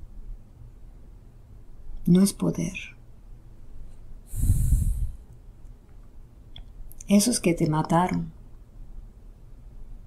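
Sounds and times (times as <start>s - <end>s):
person breathing out: 4.3s - 5.2s.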